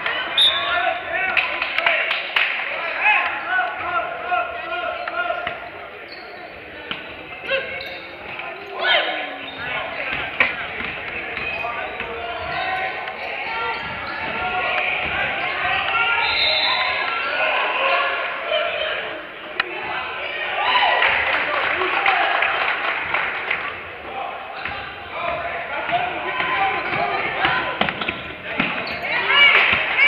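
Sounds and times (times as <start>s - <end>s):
voices echoing in gym: 0.0s - 30.0s.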